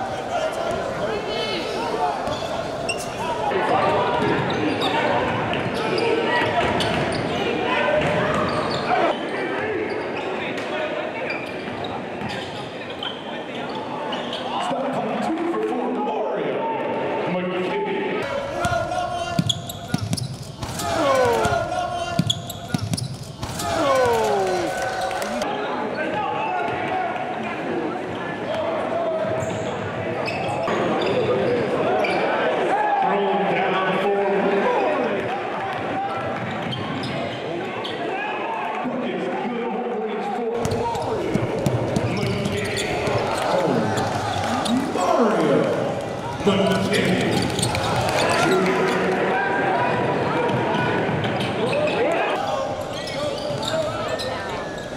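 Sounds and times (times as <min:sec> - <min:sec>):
voices of players and spectators: 0:00.0 - 0:54.9
shoe squeaks: 0:01.7 - 0:03.3, 0:08.3 - 0:09.2, 0:11.2 - 0:14.6, 0:19.2 - 0:21.3, 0:22.0 - 0:24.2, 0:29.4 - 0:32.2, 0:41.9 - 0:45.2, 0:46.2 - 0:49.0, 0:51.4 - 0:54.9.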